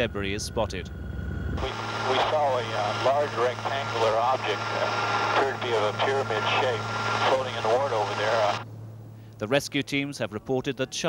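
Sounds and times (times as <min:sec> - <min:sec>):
helicopter in flight: 0:00.0 - 0:08.6
low steady hum: 0:00.0 - 0:10.8
man speaking: 0:01.6 - 0:08.6.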